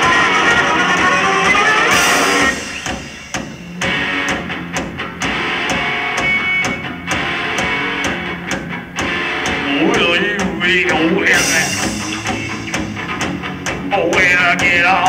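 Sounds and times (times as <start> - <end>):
rock band playing live: 0.0 - 15.0.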